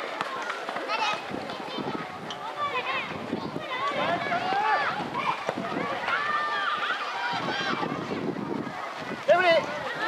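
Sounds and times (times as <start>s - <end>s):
children shouting: 0.0s - 10.0s.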